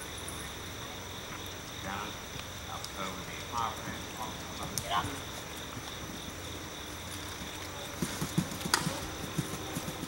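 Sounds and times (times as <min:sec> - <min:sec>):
horse hoofbeats on turf: 0:07.4 - 0:10.0.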